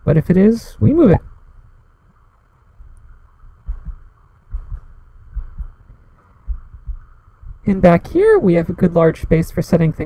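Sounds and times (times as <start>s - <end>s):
faint steady hiss: 0.0s - 10.0s
low dull thumps: 2.8s - 8.1s.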